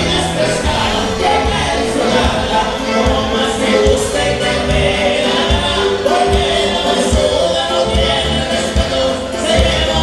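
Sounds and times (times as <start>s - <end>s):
live band playing dance music: 0.0s - 10.0s
voices singing: 0.0s - 10.0s.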